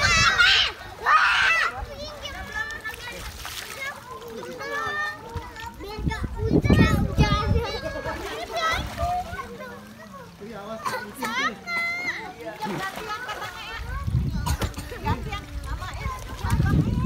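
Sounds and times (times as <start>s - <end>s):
children shouting and squealing: 0.0s - 17.0s
water splashing: 0.0s - 17.0s.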